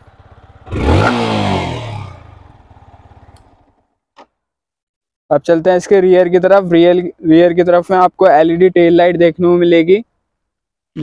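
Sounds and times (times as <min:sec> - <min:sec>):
motorcycle engine revving: 0:00.0 - 0:04.1.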